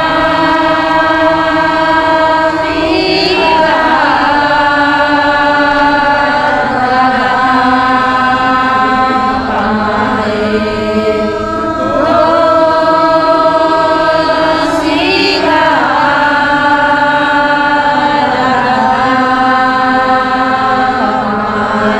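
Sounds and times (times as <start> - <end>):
women singing chant in unison: 0.0 - 21.9.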